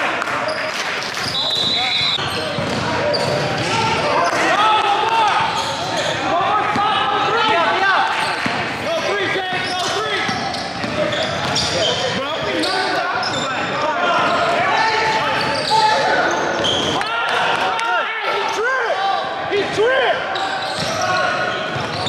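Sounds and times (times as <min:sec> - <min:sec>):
players calling out: 0:00.0 - 0:22.0
sneakers squeaking on court: 0:00.5 - 0:04.0, 0:05.4 - 0:06.2, 0:08.1 - 0:13.7, 0:15.3 - 0:17.0, 0:20.3 - 0:22.0
basketball bouncing: 0:02.5 - 0:03.8.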